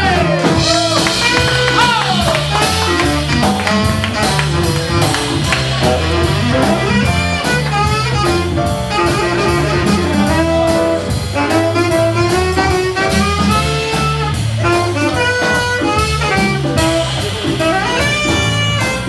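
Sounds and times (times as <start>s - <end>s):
bass: 0.0s - 19.0s
drum kit cymbals: 0.0s - 19.0s
piano: 0.0s - 19.0s
tenor saxophone melody: 0.6s - 19.0s.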